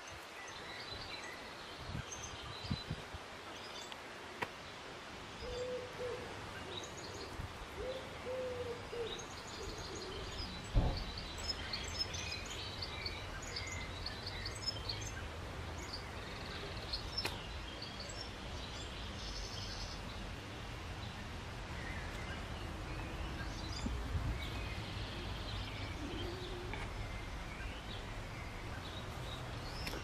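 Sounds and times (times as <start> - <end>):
small birds chirping: 0.0 - 30.0
low hooting bird calls: 5.4 - 11.9, 24.7 - 27.3
dull thump: 10.7 - 11.3.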